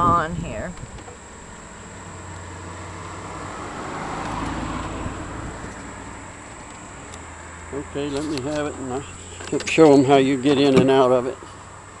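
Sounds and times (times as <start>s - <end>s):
car driving past: 2.0s - 9.8s.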